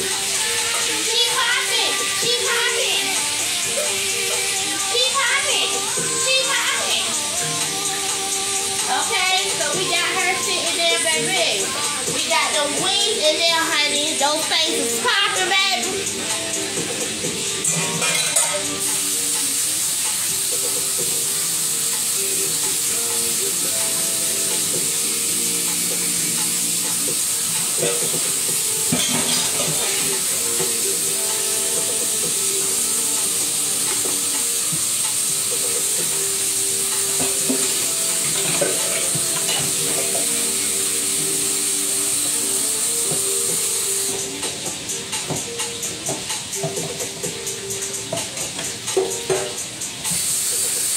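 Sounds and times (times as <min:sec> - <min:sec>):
oil sizzling in a frying pan: 0:00.0 - 0:50.9.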